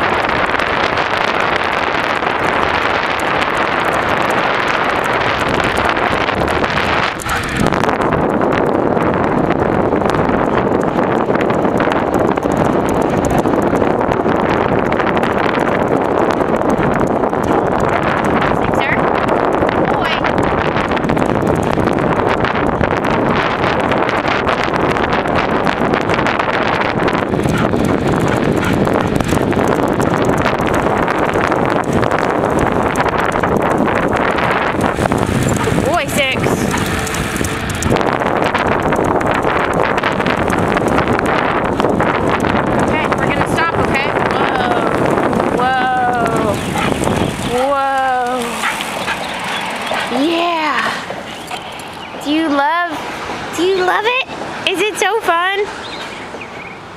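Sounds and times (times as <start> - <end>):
dog trotting on pavement: 0.0 - 56.6
road noise: 0.0 - 56.9
wind rushing on microphone: 0.0 - 56.9.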